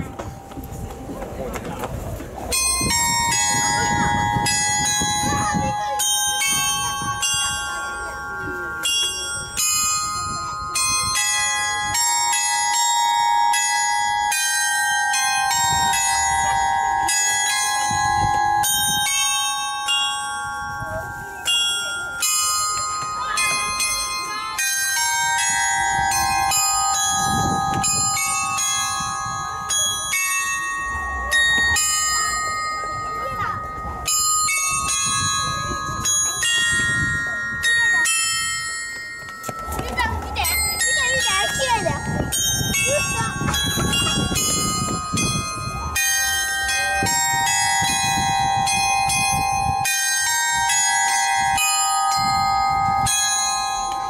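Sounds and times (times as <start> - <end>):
bell music box melody: 2.4 - 54.0.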